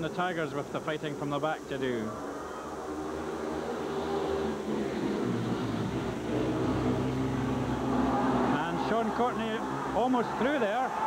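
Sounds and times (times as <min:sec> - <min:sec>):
motorbike engines racing: 0:00.0 - 0:11.0.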